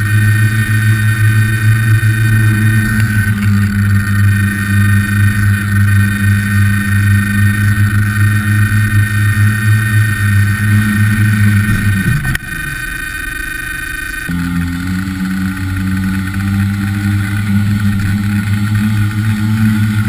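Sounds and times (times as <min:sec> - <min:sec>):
electric motors and propellers humming: 0:00.0 - 0:20.0
drone landing knock: 0:10.2 - 0:13.3.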